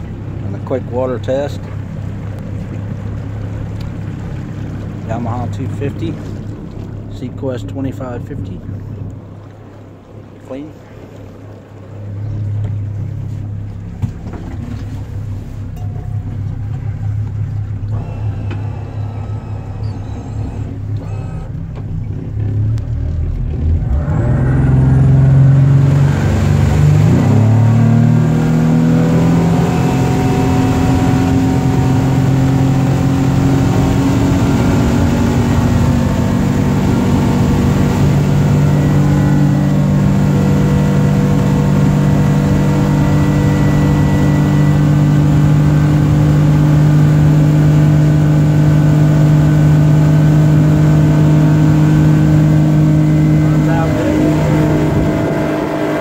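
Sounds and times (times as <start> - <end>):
outboard motor accelerating: 0.0 - 56.0.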